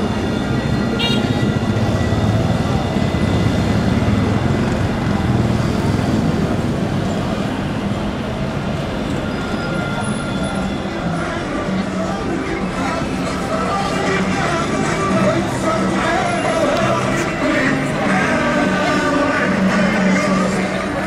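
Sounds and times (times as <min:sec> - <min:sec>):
people talking in street: 0:00.0 - 0:21.0
tram rumbling on rails: 0:00.0 - 0:21.0.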